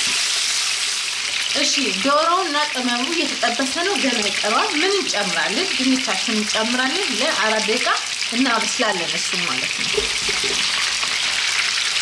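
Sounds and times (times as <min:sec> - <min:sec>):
chicken sizzling in oil: 0:00.0 - 0:12.0
woman speaking: 0:01.6 - 0:09.8.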